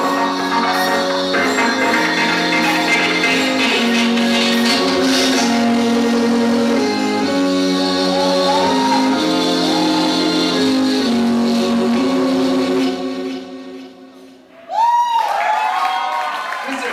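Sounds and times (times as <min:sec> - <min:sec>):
music with long held notes: 0:00.0 - 0:14.5
crowd cheering and shouting: 0:07.8 - 0:10.8, 0:14.6 - 0:16.9.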